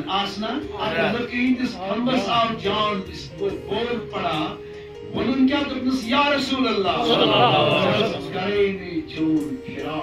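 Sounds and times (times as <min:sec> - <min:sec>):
man talking: 0:00.0 - 0:04.6, 0:05.2 - 0:10.0.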